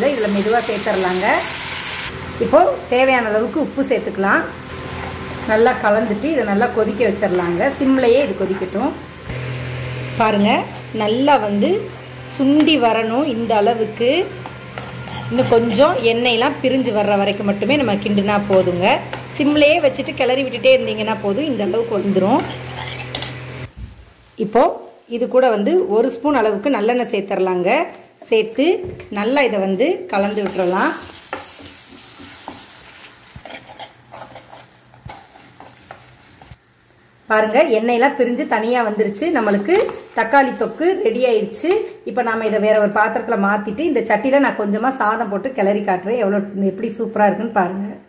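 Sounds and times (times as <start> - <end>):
light sizzle: 0.0 - 26.9, 29.9 - 43.3
metal spoon scraping a pan: 10.3 - 23.7, 30.2 - 36.6, 39.3 - 42.0
metal spoon stirring paste in pan: 14.4 - 16.5, 22.0 - 23.4, 30.3 - 36.5, 39.4 - 40.8
person talking: 15.3 - 22.5.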